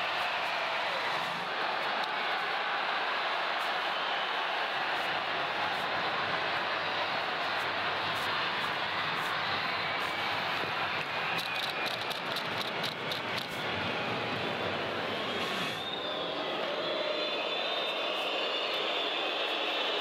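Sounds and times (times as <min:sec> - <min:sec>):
arena crowd noise: 0:00.0 - 0:20.0
sharp clicks: 0:11.4 - 0:13.5.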